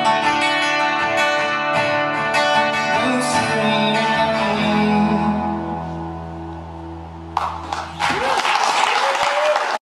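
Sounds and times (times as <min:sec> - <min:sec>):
acoustic guitar chord: 0:00.0 - 0:07.6
audience applause: 0:07.4 - 0:09.8
audience cheering: 0:07.4 - 0:09.8.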